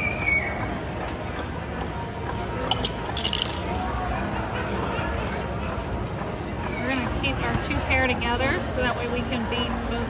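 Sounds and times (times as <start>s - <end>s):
murmur of chatter: 0.0s - 10.0s
light clinks: 2.7s - 3.9s.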